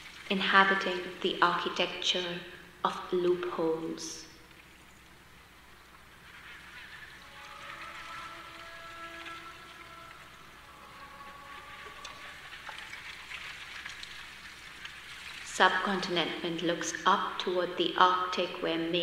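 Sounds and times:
quiet sustained tones: 0:00.0 - 0:19.0.

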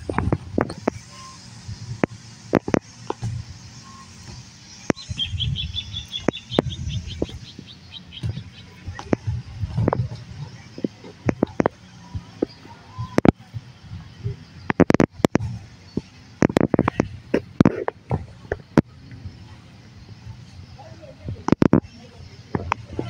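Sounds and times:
small bird chirping trill: 0:03.6 - 0:09.2
camera handling clicks and bumps: 0:14.7 - 0:15.5.

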